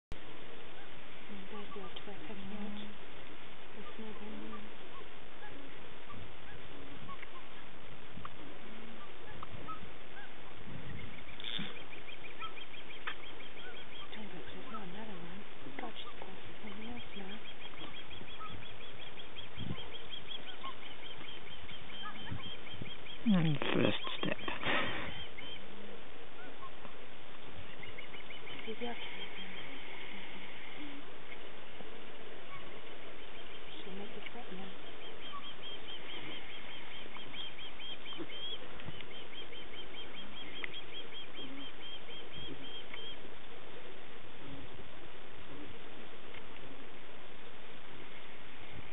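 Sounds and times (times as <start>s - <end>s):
small bird chirping: 0.1s - 44.8s
steady outdoor hiss: 0.1s - 48.9s
high regular chirping: 9.0s - 25.7s
llama humming: 11.2s - 25.6s.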